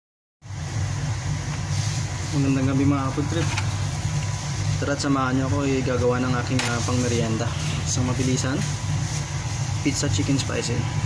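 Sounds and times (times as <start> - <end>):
low machine hum with hiss: 0.4 - 11.0.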